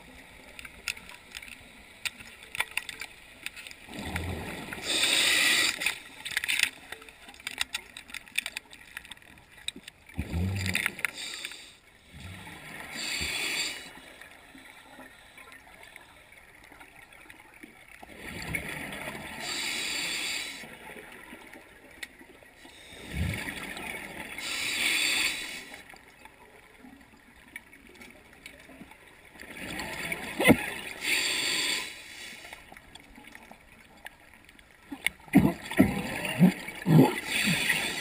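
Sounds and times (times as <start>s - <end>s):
diver breathing through regulator: 4.7s - 6.0s, 12.9s - 14.1s, 19.4s - 20.7s, 24.4s - 25.8s, 31.0s - 32.6s
hissing inhale: 4.8s - 6.0s, 11.1s - 11.8s, 12.9s - 14.2s, 19.4s - 20.7s, 24.4s - 25.8s, 31.0s - 32.6s
exhaled bubbles burbling: 35.2s - 38.0s.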